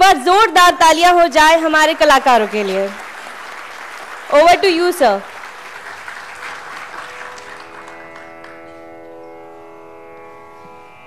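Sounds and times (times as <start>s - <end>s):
audience applauding: 1.6s - 9.2s
tanpura drone: 4.5s - 11.0s.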